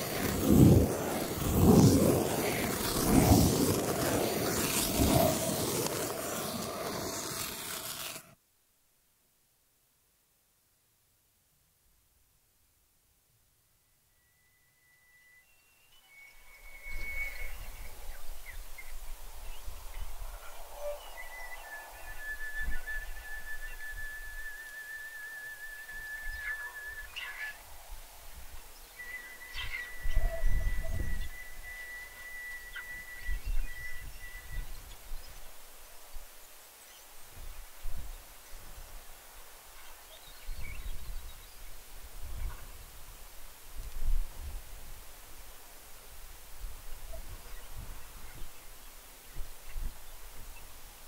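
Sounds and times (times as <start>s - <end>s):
wind rumble on microphone: 0.0s - 6.1s, 26.0s - 35.4s.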